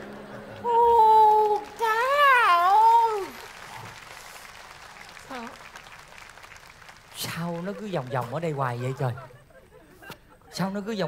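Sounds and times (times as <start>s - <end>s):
audience applause: 0.0s - 9.2s.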